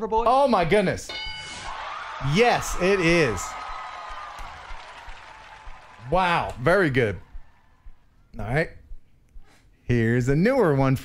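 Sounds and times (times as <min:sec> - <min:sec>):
applause-like noise: 0:02.4 - 0:08.1.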